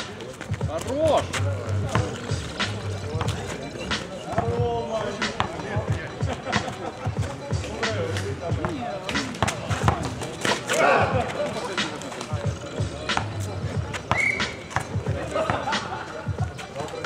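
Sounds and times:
background music: 0.0s - 17.0s
players' voices: 0.0s - 17.0s
basketball bouncing on asphalt: 1.8s - 3.5s, 4.2s - 6.0s, 8.6s - 10.2s, 13.2s - 15.7s.

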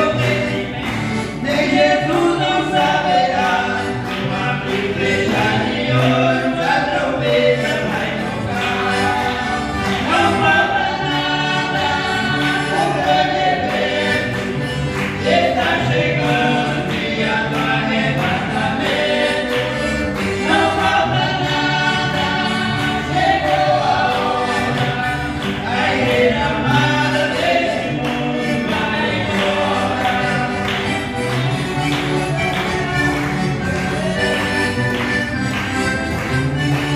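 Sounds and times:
woman and man singing hymn: 0.0s - 30.9s
piano accordion chords: 0.0s - 36.9s.

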